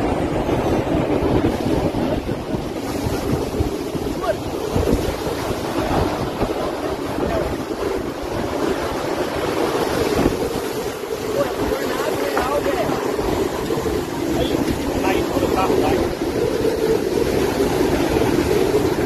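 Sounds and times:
heavy rain: 0.0s - 19.0s
tornado winds buffeting microphone: 0.0s - 19.0s
faint voices: 11.1s - 16.2s.

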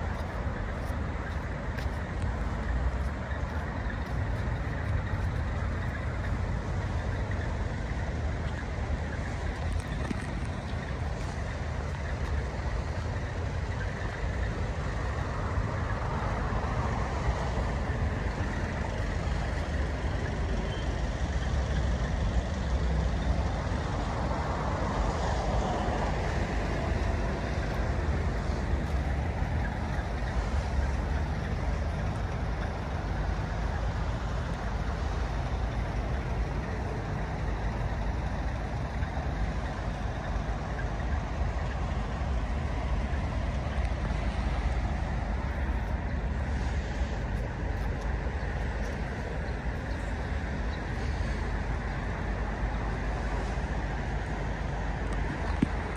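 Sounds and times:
road traffic: 0.0s - 55.9s.

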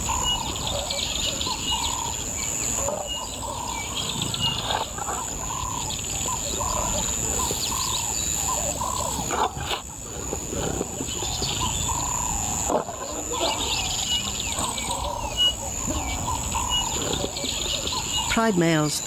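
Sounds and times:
birds chirping: 0.0s - 19.0s
high insect drone: 0.0s - 19.0s
lions growling and snarling: 2.8s - 18.3s.

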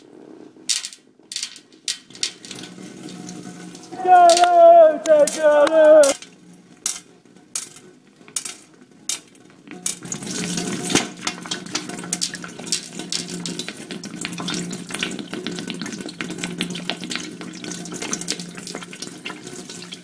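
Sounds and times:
water running and splashing: 2.2s - 6.6s, 10.0s - 20.0s.

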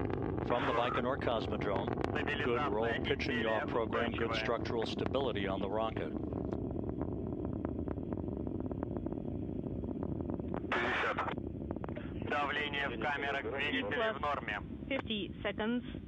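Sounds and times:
rocket engines rumbling and crackling: 0.0s - 16.0s.

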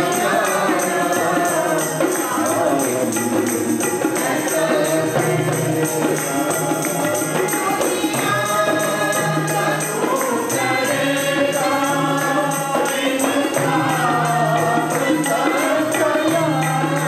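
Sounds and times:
group singing a psalm: 0.0s - 17.0s
harmonium: 0.0s - 17.0s
steady percussion beat: 0.0s - 17.0s.

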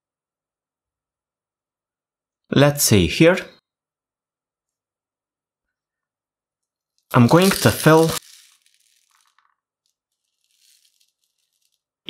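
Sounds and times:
metal pellets rattling in plastic bottle: 6.9s - 12.0s.

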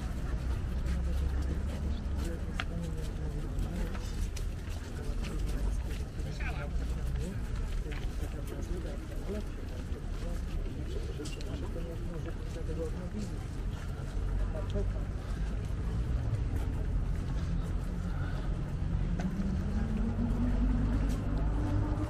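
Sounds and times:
low rumble of traffic: 0.0s - 22.0s
people talking quietly: 0.0s - 22.0s.

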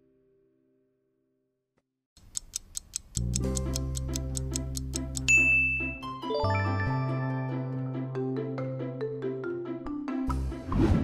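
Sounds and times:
timer ticking fast: 2.2s - 5.9s
music with steady bass: 3.2s - 6.1s, 10.3s - 11.0s
bell-like ding: 5.3s - 7.0s.

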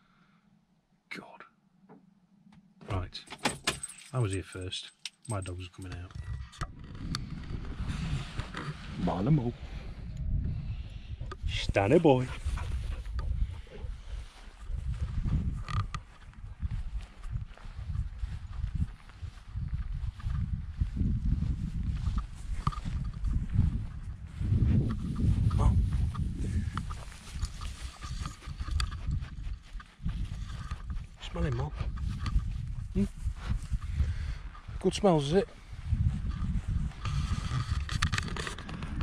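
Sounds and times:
rustling through long grass: 12.3s - 34.8s.

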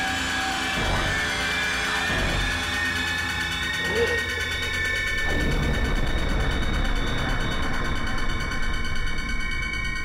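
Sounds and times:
high sustained drone: 0.0s - 10.0s
low rumbling texture: 0.8s - 10.0s.

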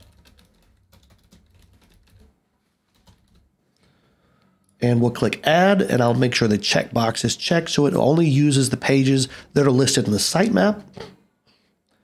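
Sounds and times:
typing on computer keyboard: 0.0s - 2.3s, 2.9s - 3.5s.

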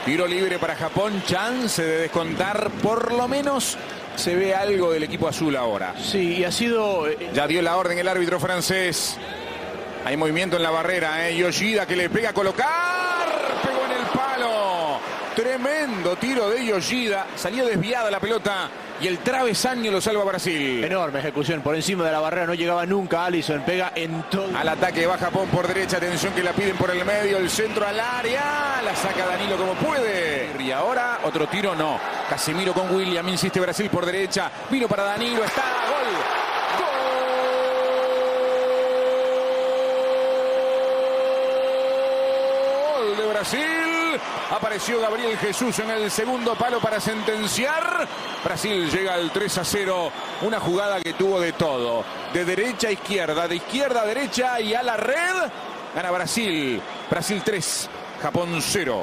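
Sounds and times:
faint stadium crowd noise: 0.0s - 59.0s
commentator shouting goal: 12.0s - 18.2s.

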